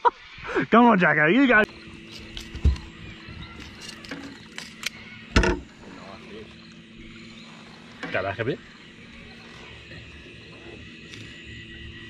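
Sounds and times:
faint steady hum: 0.0s - 12.0s
dull knock: 5.4s - 5.7s
short thump: 5.4s - 5.7s.

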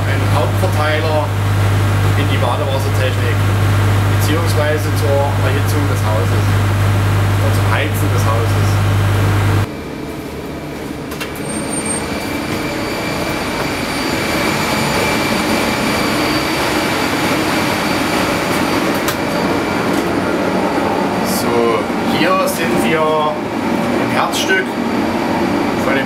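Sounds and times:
deep hum: 0.0s - 10.8s
machinery hum: 0.0s - 26.0s
thin high whines: 11.4s - 23.1s.

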